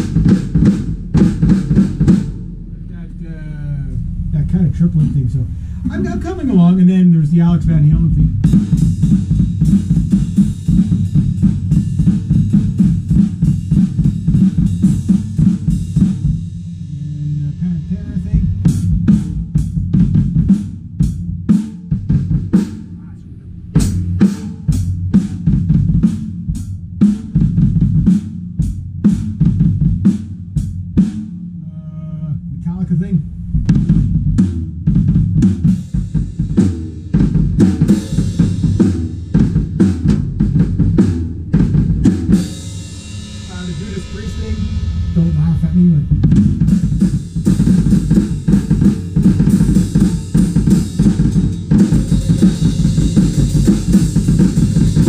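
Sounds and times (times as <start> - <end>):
fast kick drum strokes: 0.0 - 17.0, 32.6 - 55.0
snare and cymbal hits: 33.5 - 55.0.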